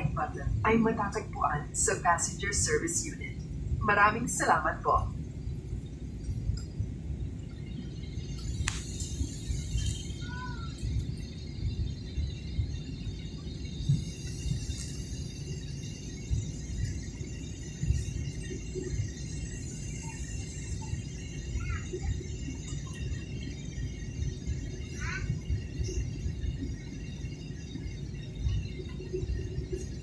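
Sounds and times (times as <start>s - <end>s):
engine and airflow rumble: 0.0s - 30.0s
faint high whine: 0.0s - 30.0s.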